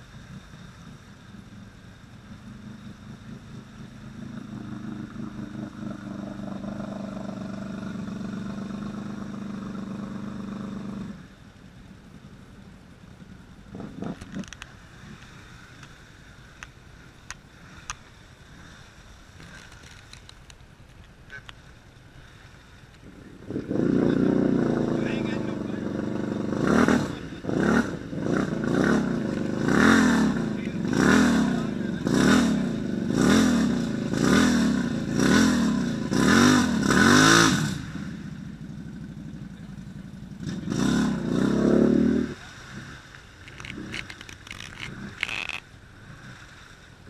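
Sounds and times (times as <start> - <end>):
atv engine revving: 0.0 - 16.6, 23.0 - 47.0.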